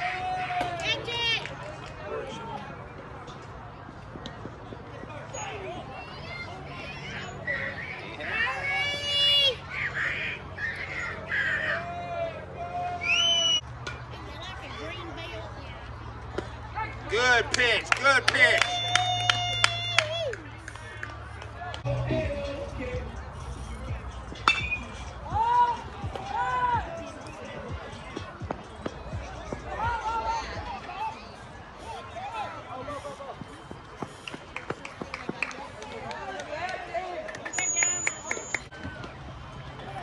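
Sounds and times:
spectators shouting: 0.0 - 1.3, 6.0 - 13.6, 24.5 - 27.2
spectators yelling and cheering: 0.0 - 2.8, 5.0 - 15.5, 16.6 - 23.7, 24.4 - 40.0
shrill whoop or whistle: 12.9 - 13.6
metal bat pinging on ball: 24.4 - 25.0.

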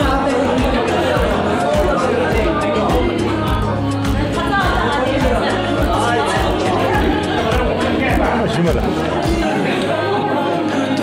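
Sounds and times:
chatter of many people: 0.0 - 11.0
music with steady beat: 0.0 - 11.0.

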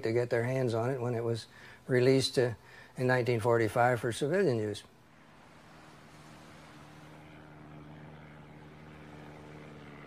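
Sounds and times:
faint engine drone: 0.0 - 10.0.

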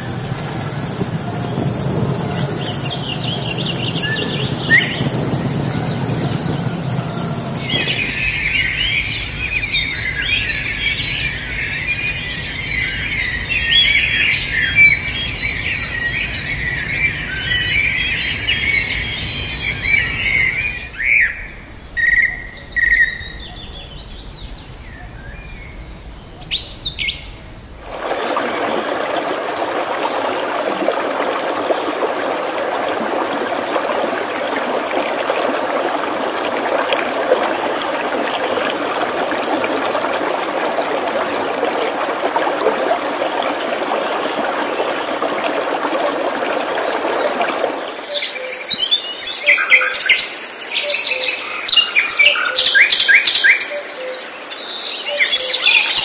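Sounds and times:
steady rushing noise: 0.0 - 8.5, 23.2 - 48.0
wind buffeting microphone: 0.0 - 9.6
birds chirping: 0.0 - 56.0.

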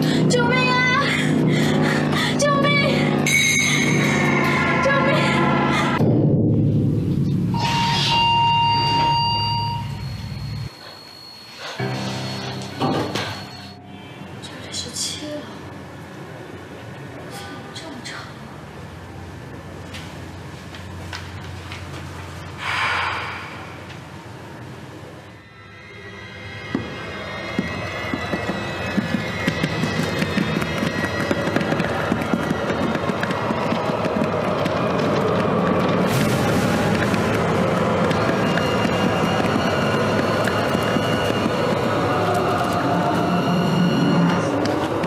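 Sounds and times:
suspenseful film score: 0.0 - 18.4, 22.6 - 45.0.

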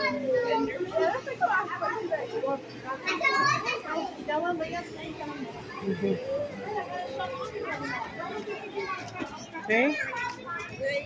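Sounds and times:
children and adults talking: 0.0 - 11.0.

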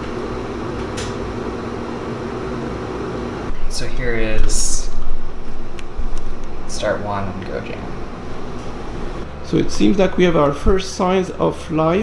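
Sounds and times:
lab equipment humming: 0.0 - 12.0.

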